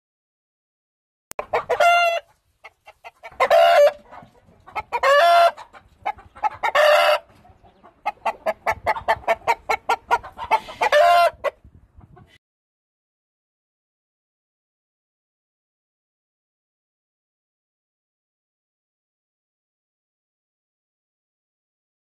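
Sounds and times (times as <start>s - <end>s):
quick clucks: 1.3s - 12.4s
rooster calling: 1.4s - 2.3s, 3.2s - 4.1s, 4.8s - 5.6s, 6.4s - 9.6s, 10.4s - 11.6s.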